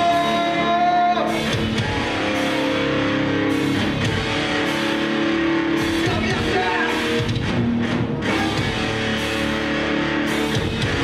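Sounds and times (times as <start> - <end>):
distorted electric guitar chords: 0.0 - 11.0
drum kit: 0.0 - 11.0.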